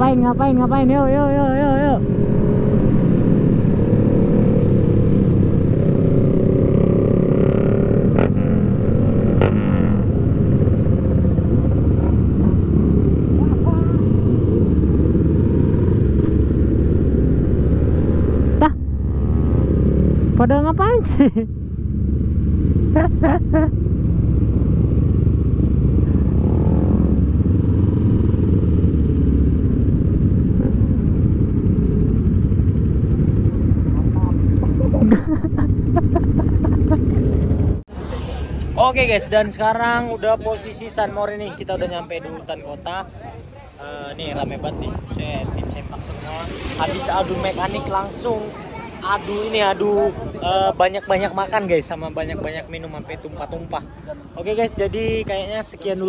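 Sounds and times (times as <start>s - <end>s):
motorcycle engine running: 5.2s - 37.8s
wind rushing on microphone: 21.8s - 56.0s.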